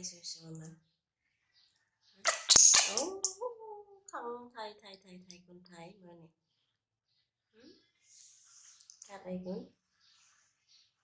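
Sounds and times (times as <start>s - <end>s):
baby monkey squealing: 2.2s - 3.2s.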